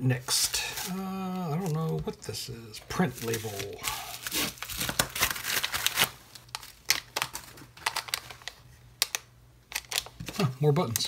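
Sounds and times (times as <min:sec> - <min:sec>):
plastic packaging crinkling: 0:00.2 - 0:11.0.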